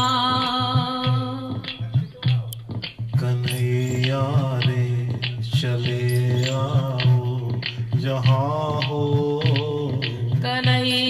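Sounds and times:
low drum beat: 0.0 - 11.0
man singing into a microphone: 3.2 - 10.7.

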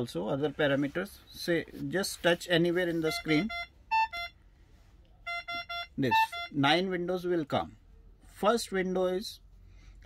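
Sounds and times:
ventilator alarm beeping: 5.3 - 6.6.

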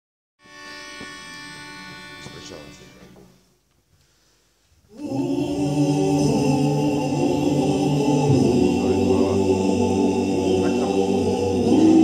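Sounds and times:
men singing a cappella: 4.9 - 12.0.

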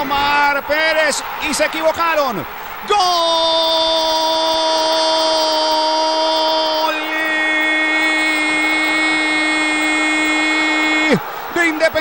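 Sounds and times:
commentator's drawn-out goal cry: 0.0 - 12.0.

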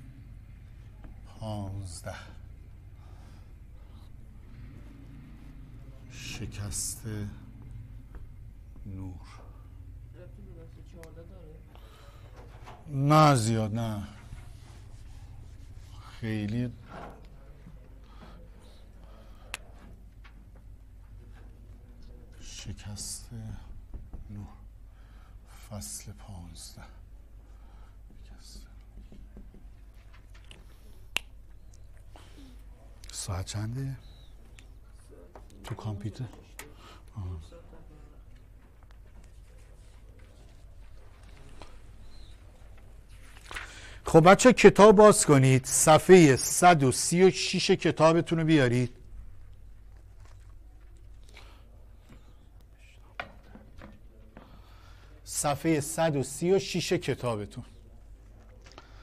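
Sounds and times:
low room hum: 0.0 - 59.0
man speaking: 1.3 - 2.5, 6.0 - 7.6, 8.8 - 11.7, 12.9 - 14.3, 15.9 - 17.7, 32.9 - 34.3, 35.0 - 38.2, 44.0 - 49.0, 55.2 - 57.8
man breathing: 2.8 - 4.9, 11.7 - 12.7, 17.9 - 19.9, 24.8 - 25.6, 27.4 - 28.2, 43.5 - 44.1, 54.3 - 55.2.

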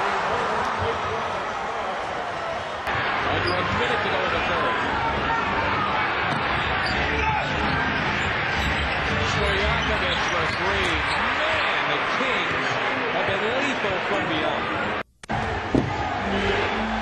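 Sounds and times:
arena crowd noise: 0.0 - 17.0.

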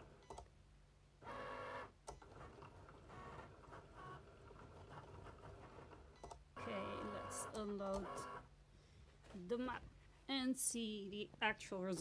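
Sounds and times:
cutting machine motors whirring: 6.6 - 8.4.

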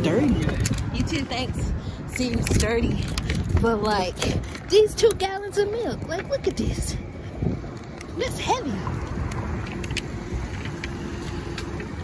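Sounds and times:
rumble of vehicles: 0.0 - 12.0.

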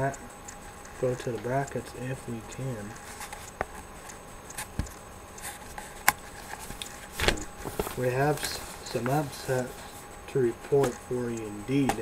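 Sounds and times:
light clicks and taps: 0.0 - 12.0
faint handling noise: 1.0 - 12.0.

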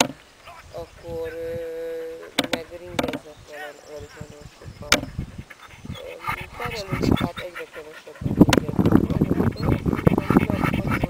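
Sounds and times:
person talking: 0.0 - 5.1, 5.9 - 11.0.

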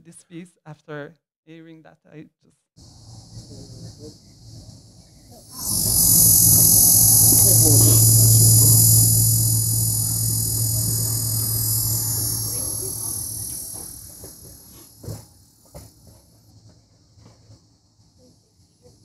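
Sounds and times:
crickets trilling: 2.8 - 15.2
low hum: 2.8 - 15.2.

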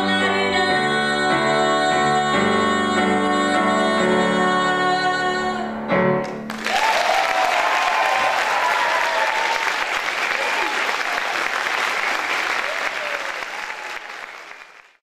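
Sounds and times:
audience applauding: 6.2 - 15.0.

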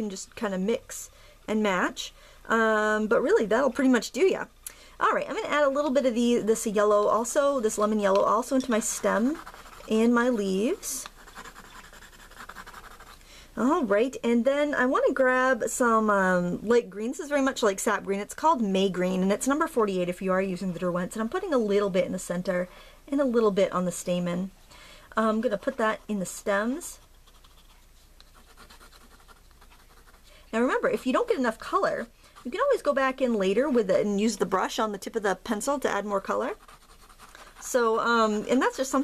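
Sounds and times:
pencil scratching on paper: 7.4 - 13.2, 27.2 - 30.3, 32.3 - 32.9, 36.3 - 37.8.

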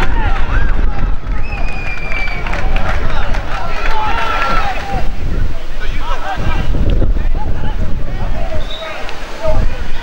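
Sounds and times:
players and spectators shouting: 0.0 - 10.0
wind rumble on microphone: 0.0 - 10.0.

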